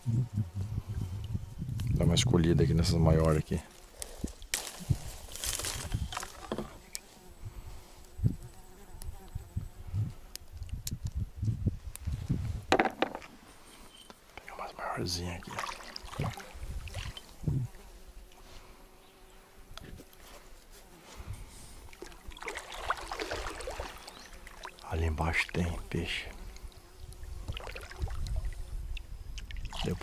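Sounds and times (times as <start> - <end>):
insect buzzing: 0.0 - 30.0
knocks and taps on kayak: 12.7 - 13.3.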